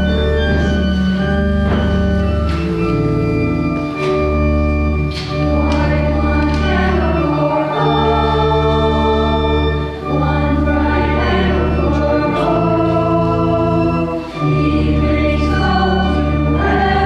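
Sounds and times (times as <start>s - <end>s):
organ chords: 0.0s - 17.0s
voices singing a hymn: 5.2s - 17.0s.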